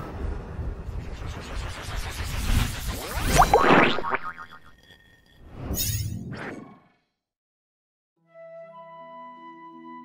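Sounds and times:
low rumbling whoosh: 0:00.0 - 0:03.6
quick rising pitch glides: 0:00.9 - 0:04.7.

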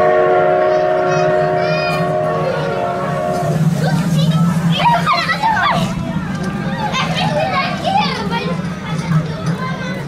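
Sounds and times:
young children calling and squealing: 0:00.7 - 0:10.0.

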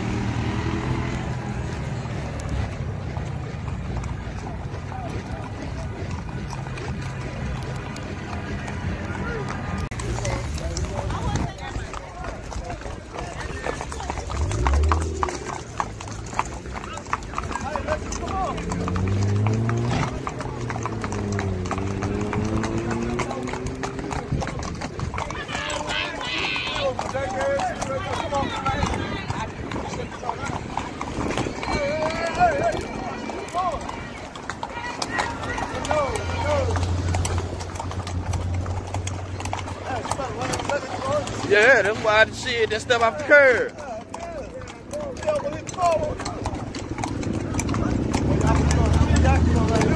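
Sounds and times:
hooves clip-clopping on pavement: 0:00.0 - 0:49.9
people talking: 0:08.6 - 0:19.2, 0:22.8 - 0:36.9, 0:39.7 - 0:46.6, 0:47.6 - 0:49.9.

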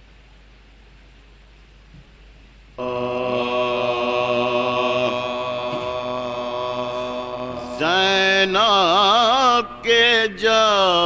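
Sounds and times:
solo voice singing ornamented melody: 0:02.8 - 0:11.0
vocal drone on held note: 0:02.8 - 0:11.0.

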